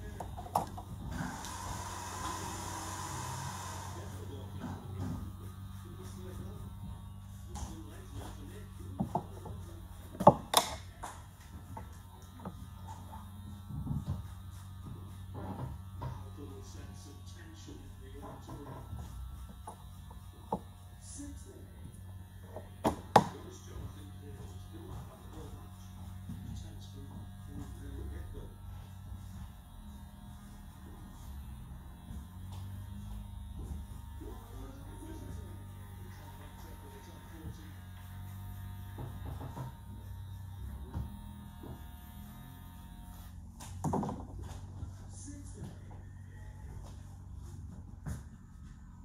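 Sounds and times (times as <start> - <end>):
faint background voices: 0.0 - 43.3.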